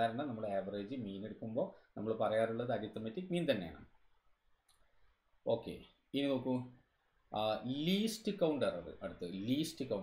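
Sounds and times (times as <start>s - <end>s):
man speaking: 0.0s - 4.1s, 5.4s - 10.0s.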